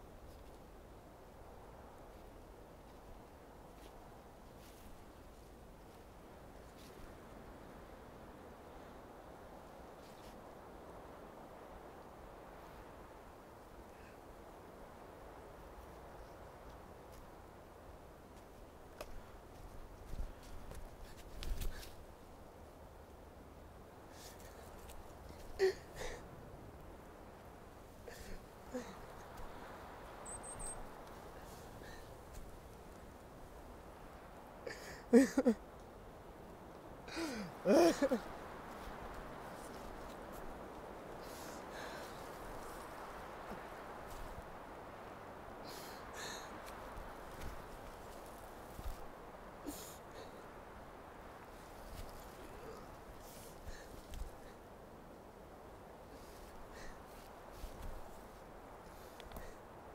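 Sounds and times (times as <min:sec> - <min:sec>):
outdoor background hiss: 0:00.0 - 0:59.9.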